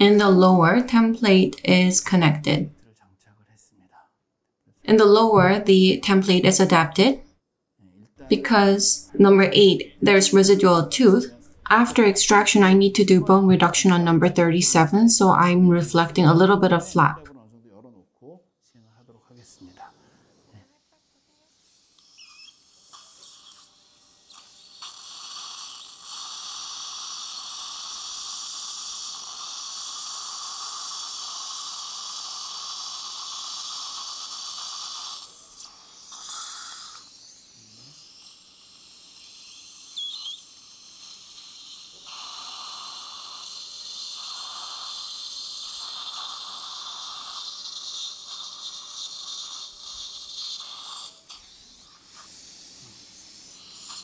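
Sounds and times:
dental drill hissing: 0:04.9 - 0:07.3, 0:08.3 - 0:17.3, 0:19.3 - 0:54.0.

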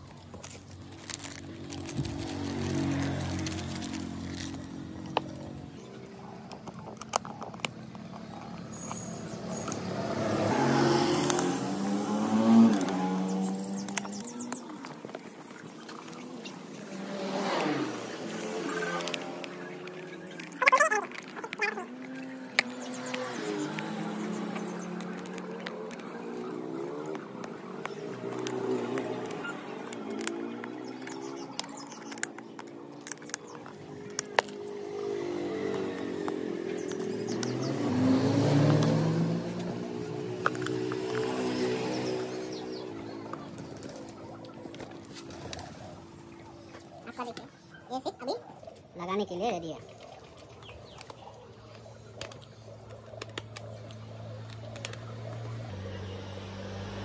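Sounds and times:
passing vehicle engine hum: 0:00.0 - 0:47.8, 0:49.4 - 0:57.0.

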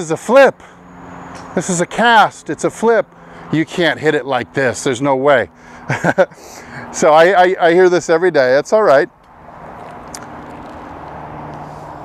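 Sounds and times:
steady outdoor background rush: 0:00.0 - 0:12.0.

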